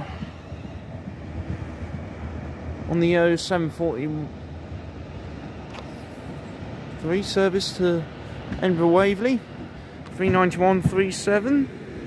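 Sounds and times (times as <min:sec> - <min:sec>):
train rumbling on track: 0:00.0 - 0:12.0.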